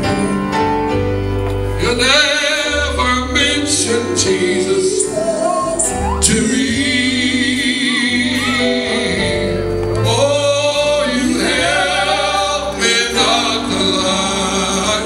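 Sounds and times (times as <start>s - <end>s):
congregation singing: 0.0s - 15.0s
instrumental accompaniment: 0.0s - 15.0s
man singing with vibrato: 1.8s - 15.0s.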